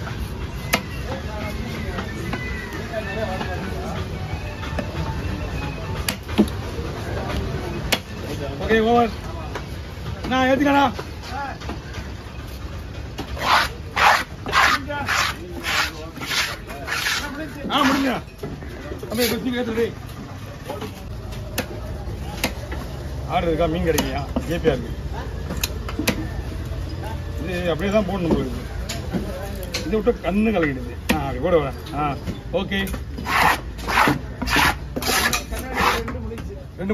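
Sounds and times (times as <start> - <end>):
knife blade scraping: 13.4 - 18.2, 33.2 - 36.1.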